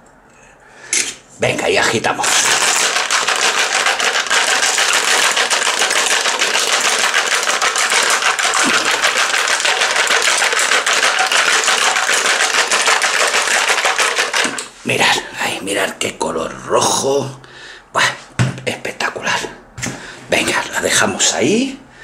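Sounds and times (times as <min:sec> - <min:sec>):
ice rattling in cocktail shaker: 0:01.9 - 0:14.8.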